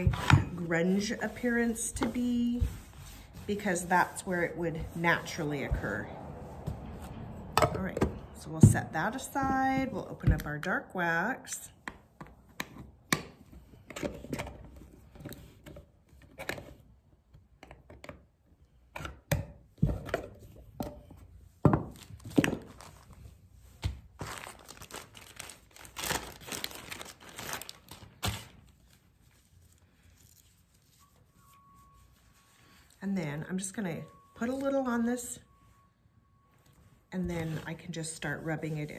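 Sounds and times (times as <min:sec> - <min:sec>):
plastic bag crinkling: 0:24.2 - 0:30.7.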